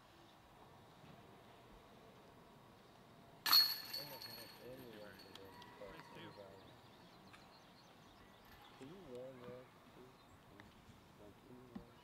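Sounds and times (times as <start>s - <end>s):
disc hitting metal chains: 3.5s - 5.2s.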